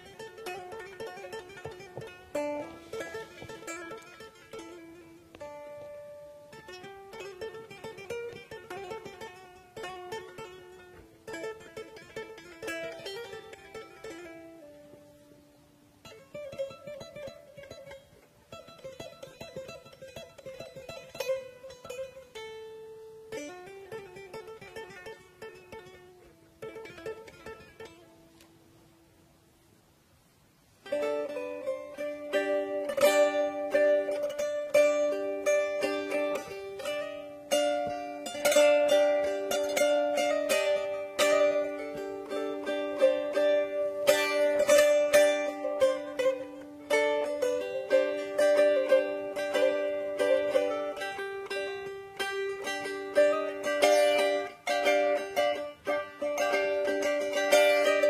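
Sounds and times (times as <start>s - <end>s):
loud droning lute passage: 0.0s - 15.3s, 30.8s - 58.0s
lute picked with plectrum: 0.0s - 58.0s.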